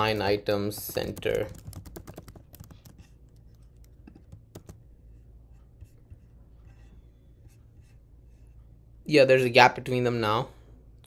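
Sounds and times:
computer keyboard typing: 0.0 - 4.8.

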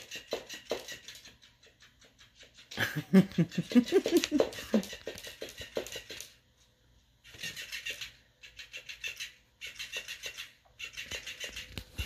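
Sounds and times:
fish toy flapping on wooden floor: 0.0 - 2.8, 3.6 - 6.4, 7.2 - 12.0.

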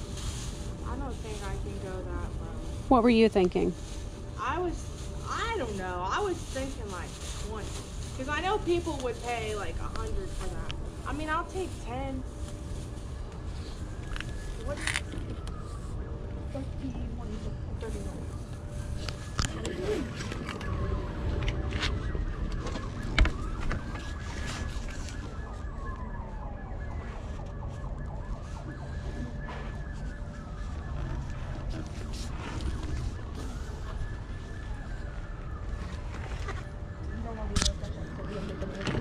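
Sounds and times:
distant siren wailing: 0.0 - 39.0.

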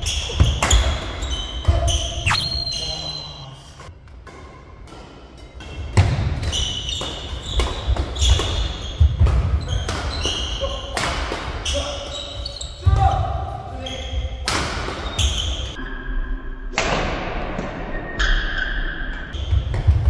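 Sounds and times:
shoes squeaking on floor: 6.5 - 10.6, 11.6 - 12.8.

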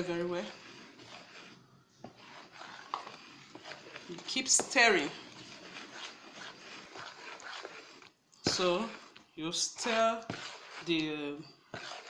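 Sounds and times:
spoon scraping batter in bowl: 0.0 - 12.0.

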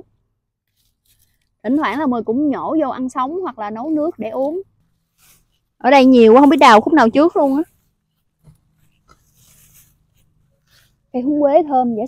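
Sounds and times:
rustling of leaves and stalks: 0.6 - 12.0.

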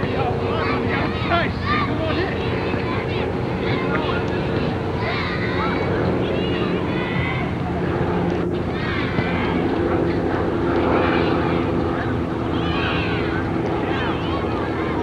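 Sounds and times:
distant voices: 0.0 - 15.0
steady mechanical drone: 0.0 - 15.0.

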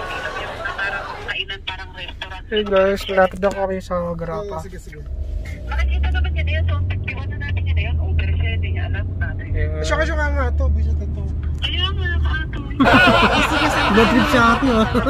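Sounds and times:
car rumble from inside cabin: 0.0 - 15.0.

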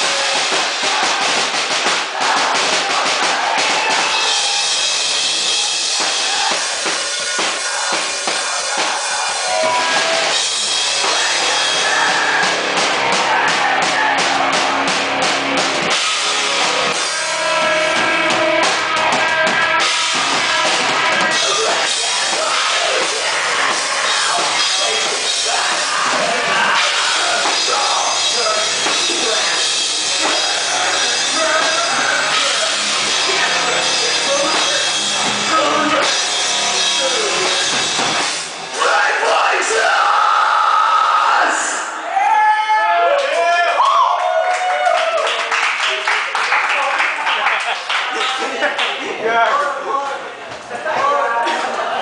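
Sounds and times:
rock band playing live: 0.0 - 42.0
drums and cymbals: 0.0 - 42.3.

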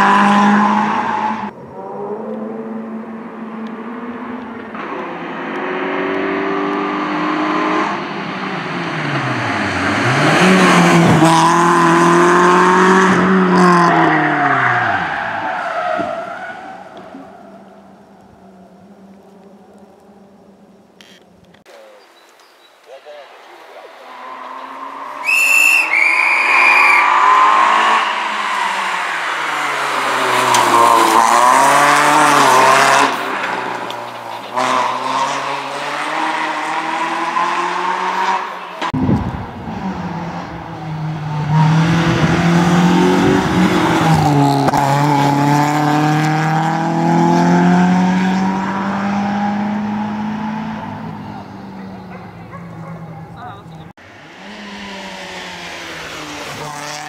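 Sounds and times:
rally car engine revving: 0.0 - 20.4, 23.9 - 57.0.

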